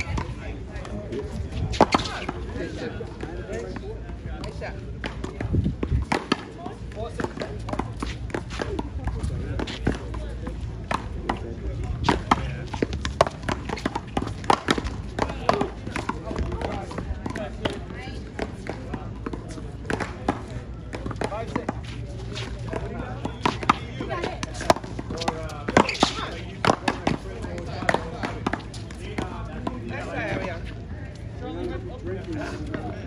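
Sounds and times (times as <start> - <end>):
paddles hitting rubber ball: 4.4 - 21.8, 22.4 - 30.0.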